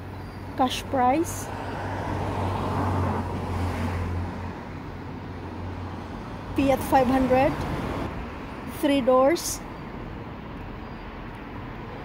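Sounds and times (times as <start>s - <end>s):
motor vehicle rumble: 0.0s - 12.0s.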